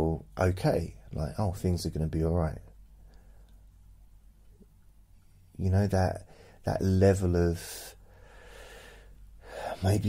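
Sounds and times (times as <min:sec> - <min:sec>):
man breathing softly: 0:03.0 - 0:03.7, 0:06.3 - 0:06.6, 0:08.0 - 0:09.9
man speaking slowly: 0:09.7 - 0:10.0.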